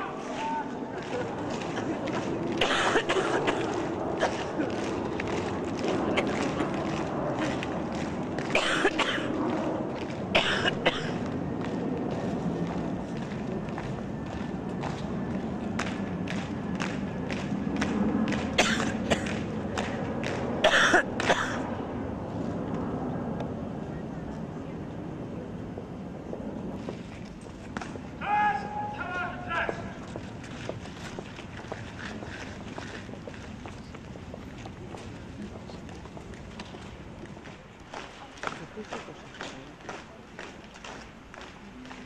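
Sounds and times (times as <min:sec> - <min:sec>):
boots marching on tarmac: 0:00.2 - 0:21.5, 0:25.7 - 0:42.0.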